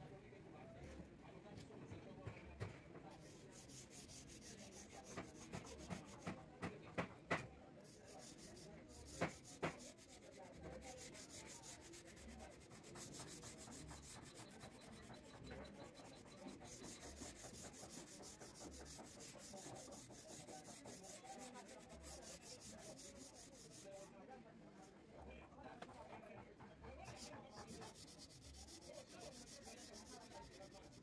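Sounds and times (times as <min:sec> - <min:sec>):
wood rubbing on wood: 0:08.1 - 0:15.3, 0:16.1 - 0:23.9.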